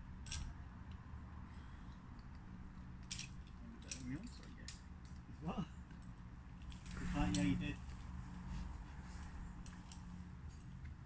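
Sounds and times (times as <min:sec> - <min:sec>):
metal climbing gear clinking: 0:00.2 - 0:01.0, 0:01.8 - 0:05.3, 0:05.9 - 0:08.0, 0:09.1 - 0:10.9.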